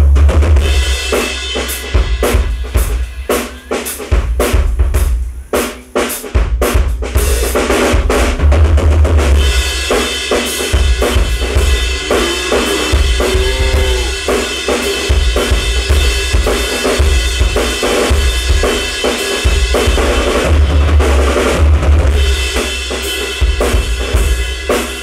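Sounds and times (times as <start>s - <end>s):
bass drum kicks: 10.8s - 14.4s.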